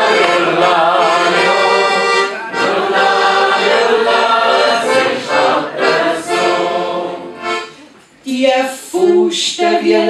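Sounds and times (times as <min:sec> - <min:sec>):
voices singing along: 0:00.0 - 0:07.6, 0:08.3 - 0:10.0
accordion playing folk tune: 0:00.0 - 0:08.0.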